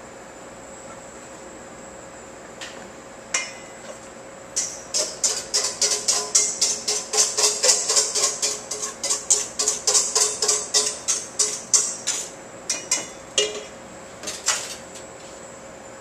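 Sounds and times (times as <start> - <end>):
whisk clinking against metal bowl: 4.6 - 13.7.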